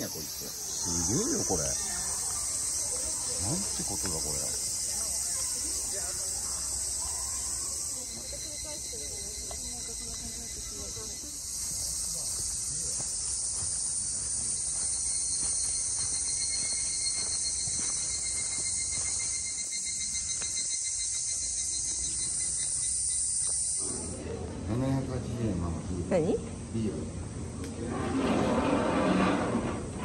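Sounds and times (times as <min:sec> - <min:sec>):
insect chorus drone: 0:00.0 - 0:30.0.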